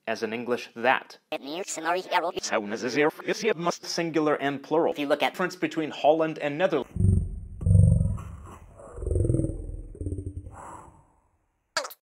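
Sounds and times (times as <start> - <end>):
deep rough growling roar: 6.9 - 10.6.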